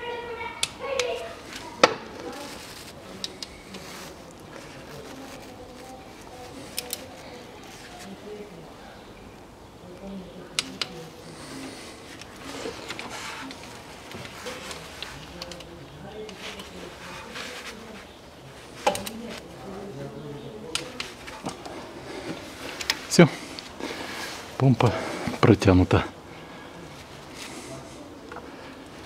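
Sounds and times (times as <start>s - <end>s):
faint murmuring voices: 0.0s - 29.0s.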